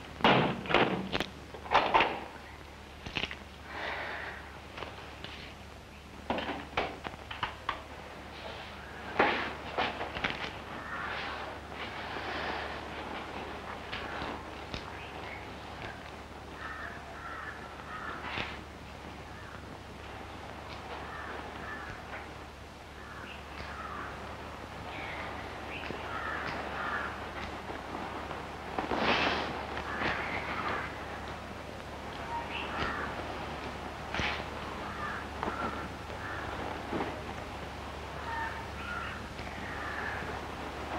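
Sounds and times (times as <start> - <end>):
steady low hum: 0.0 - 40.9
crows cawing: 8.8 - 31.5, 32.1 - 37.4, 38.1 - 40.9.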